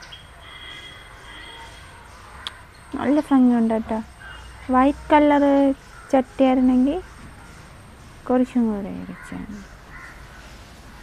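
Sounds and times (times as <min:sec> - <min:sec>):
faint bird calls: 0:00.0 - 0:11.0
outdoor background noise: 0:00.0 - 0:11.0.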